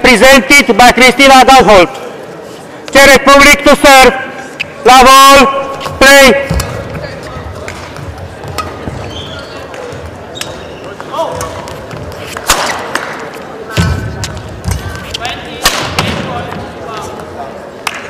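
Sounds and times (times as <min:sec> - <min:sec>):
rackets hitting shuttlecock: 0:05.8 - 0:07.0, 0:07.6 - 0:16.6
shoe squeaks on court: 0:08.6 - 0:11.1.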